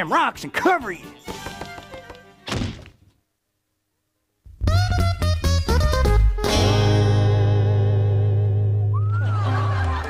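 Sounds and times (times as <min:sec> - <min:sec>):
cartoon door slam thunk: 0:02.4 - 0:03.1.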